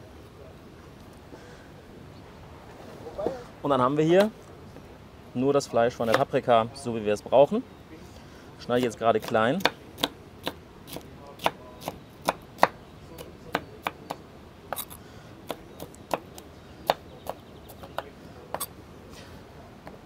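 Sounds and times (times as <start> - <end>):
knife chopping on wooden board: 9.2 - 14.9.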